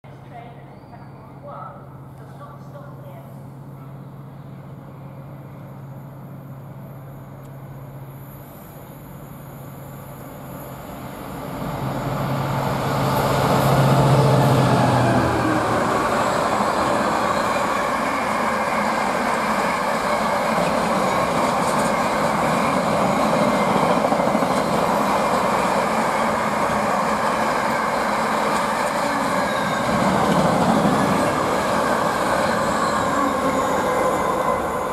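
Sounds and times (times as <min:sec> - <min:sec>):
diesel locomotive droning: 0:00.6 - 0:34.9
train wheels rolling on rails: 0:09.9 - 0:34.9.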